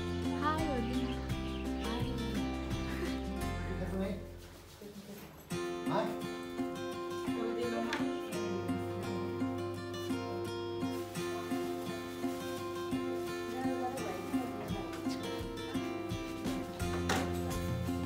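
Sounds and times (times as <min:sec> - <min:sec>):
strummed acoustic guitar: 0:00.0 - 0:04.0, 0:05.5 - 0:18.0.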